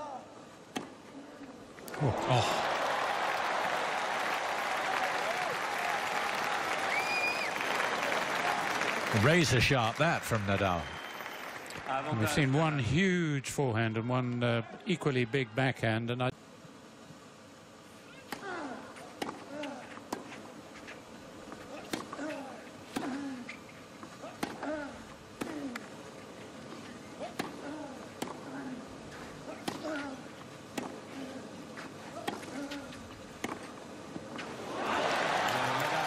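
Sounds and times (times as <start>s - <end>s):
player grunting: 2.0s - 2.7s
racket striking tennis ball: 21.8s - 22.1s, 24.3s - 24.7s, 27.2s - 28.4s, 29.5s - 30.1s.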